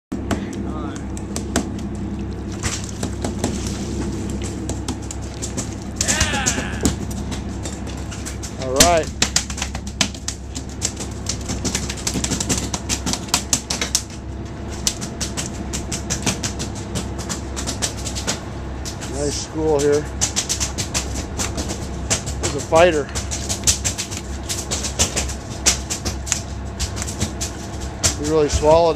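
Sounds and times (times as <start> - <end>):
boat engine humming: 0.1 - 28.9
sharp clicks and knocks: 4.3 - 28.9
raised voice: 6.0 - 6.9.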